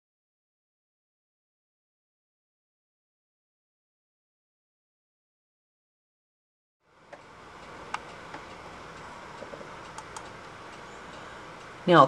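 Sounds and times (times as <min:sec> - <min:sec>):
room hiss: 0:06.8 - 0:12.0
computer mouse clicks: 0:09.4 - 0:10.3.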